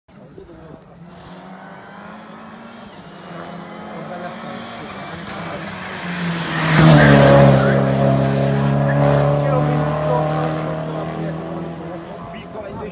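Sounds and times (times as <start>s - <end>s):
race car passing at speed: 1.0s - 12.9s.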